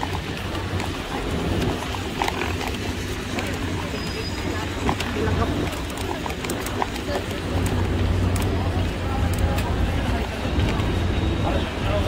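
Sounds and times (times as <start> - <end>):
footsteps clicking on pavement: 0.0 - 11.2
low rumble of traffic: 0.0 - 12.0
vehicle engine: 0.0 - 12.0.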